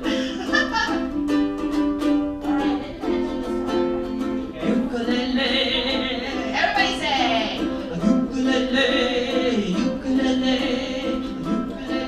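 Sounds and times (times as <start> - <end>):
ukulele strumming chords: 0.0 - 12.0.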